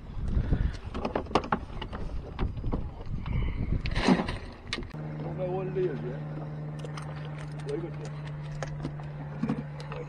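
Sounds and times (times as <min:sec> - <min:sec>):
small motor humming: 0:05.0 - 0:10.0.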